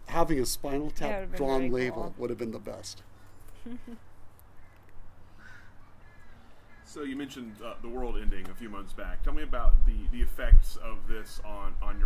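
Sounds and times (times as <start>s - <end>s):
low background hum: 0.0s - 12.0s
short bird call: 4.6s - 7.0s.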